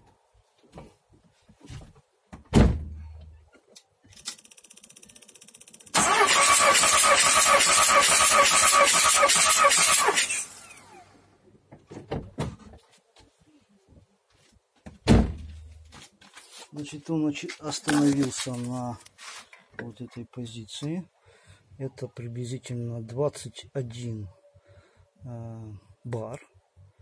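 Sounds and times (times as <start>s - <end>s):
thump: 1.7s - 3.1s, 14.8s - 15.6s
starter motor cranking diesel engine: 4.6s - 11.0s.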